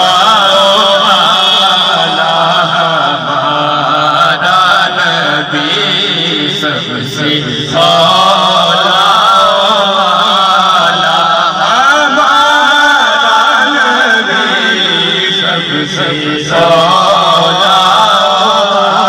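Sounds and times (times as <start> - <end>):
man chanting into a microphone: 0.0 - 19.0.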